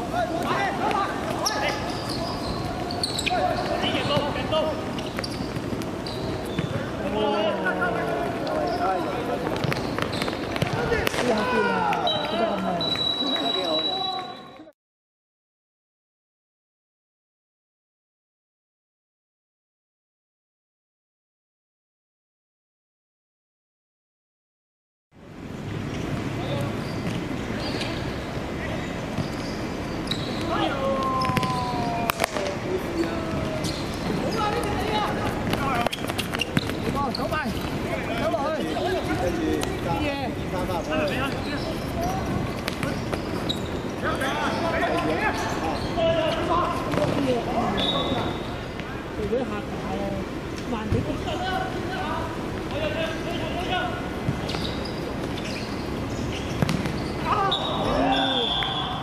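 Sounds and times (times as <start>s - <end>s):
players' feet on hard court: 0.1s - 13.8s, 29.1s - 47.7s, 54.0s - 58.0s
players shouting: 10.5s - 14.5s, 30.2s - 35.9s, 57.0s - 59.0s
ball being kicked: 31.2s - 32.4s, 56.6s - 57.0s
referee's whistle blast: 57.4s - 59.0s.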